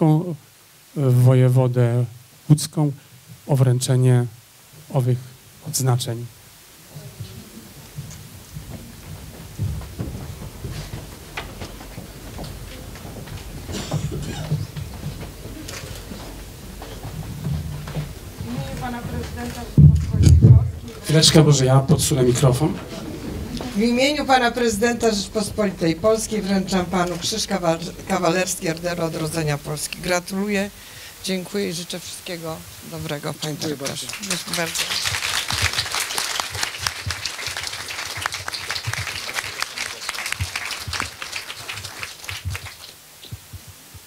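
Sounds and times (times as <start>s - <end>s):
microphone handling rumble: 7.0s - 30.2s
audience applauding: 33.4s - 43.0s.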